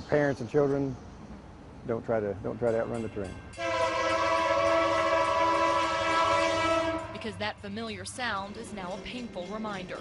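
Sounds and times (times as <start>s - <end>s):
locomotive air horn: 3.6s - 7.2s.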